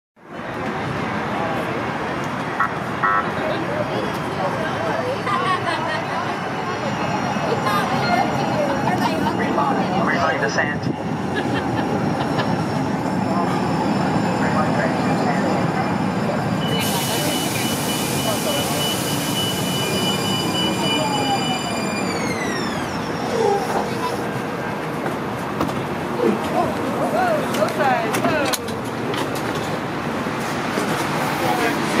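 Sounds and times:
crowd chatter: 0:00.2 - 0:32.0
street and vehicle noise: 0:00.2 - 0:32.0.

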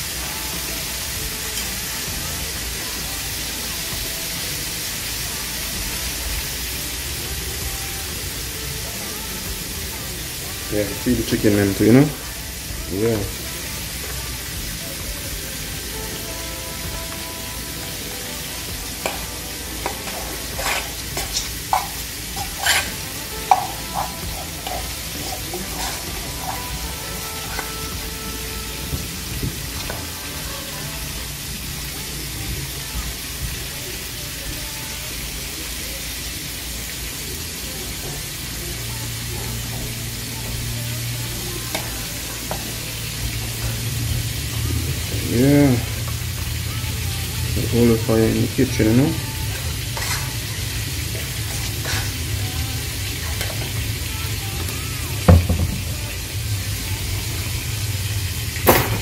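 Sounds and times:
fish sizzling in hot oil: 0:00.0 - 0:59.0
oil popping and crackling: 0:10.8 - 0:34.5, 0:35.8 - 0:59.0.

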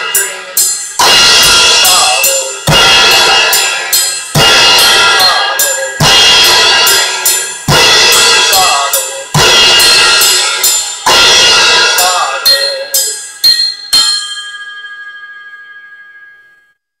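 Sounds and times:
drum kit crashes: 0:00.0 - 0:14.3
cymbal ringing: 0:00.0 - 0:16.8
sharp drum hits: 0:00.9 - 0:12.9.

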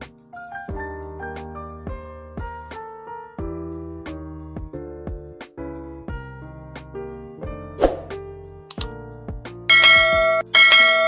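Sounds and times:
background music: 0:00.0 - 0:11.0
notification bell chime: 0:09.7 - 0:11.0.

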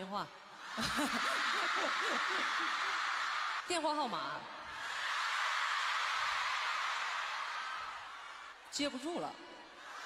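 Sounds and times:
crowd screaming and cheering: 0:00.5 - 0:10.0.

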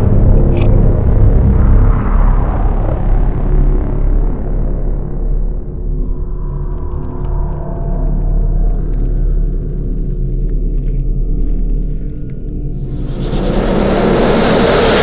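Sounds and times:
low synth drone: 0:00.0 - 0:15.0
rumble of noise: 0:00.0 - 0:15.0.

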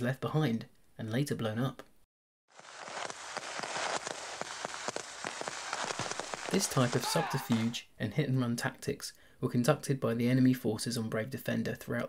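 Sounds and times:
rustling through undergrowth: 0:02.5 - 0:07.8.

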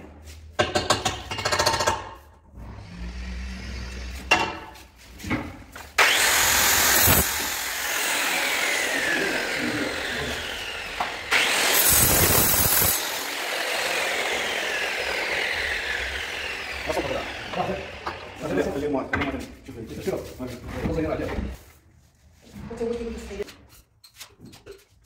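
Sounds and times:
angle grinder whining: 0:06.0 - 0:18.9.

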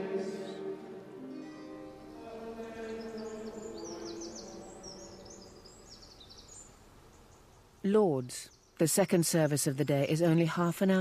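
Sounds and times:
choral chant: 0:00.0 - 0:05.8
songbirds chirping: 0:00.0 - 0:11.0.

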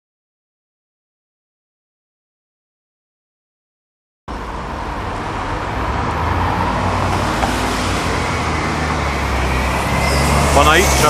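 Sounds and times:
bus diesel engine rumble: 0:04.3 - 0:11.0
road noise: 0:04.3 - 0:11.0.

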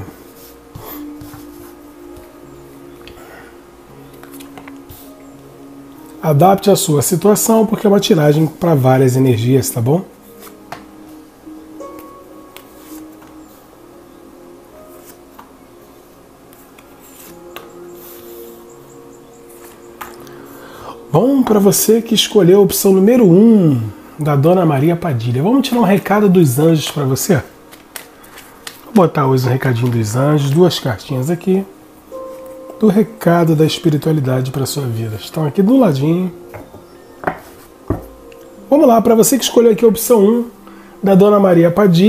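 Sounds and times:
soft background music: 0:00.0 - 0:42.0
cards sliding on cloth: 0:16.8 - 0:18.6, 0:27.7 - 0:28.9.

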